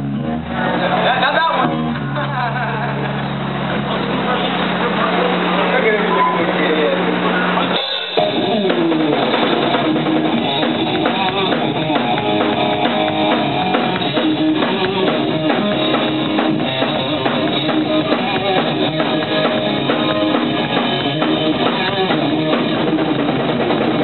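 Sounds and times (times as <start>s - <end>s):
distorted electric guitars: 0.0s - 24.0s
drum kit beat: 7.6s - 24.0s.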